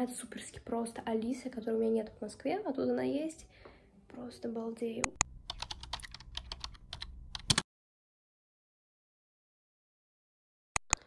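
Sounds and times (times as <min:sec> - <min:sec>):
computer keyboard typing: 0:05.0 - 0:07.6.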